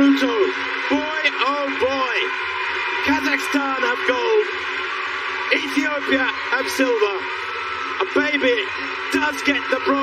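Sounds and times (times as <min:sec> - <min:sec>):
man talking: 0:00.0 - 0:02.3, 0:03.0 - 0:04.5, 0:05.5 - 0:07.3, 0:08.0 - 0:10.0.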